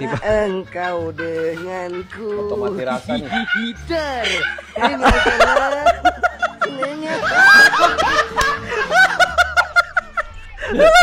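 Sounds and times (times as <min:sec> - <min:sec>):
men laughing: 0:00.0 - 0:11.0.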